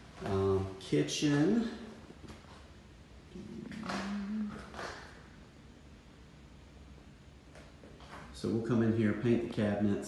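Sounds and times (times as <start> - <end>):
man humming: 3.3 - 5.0.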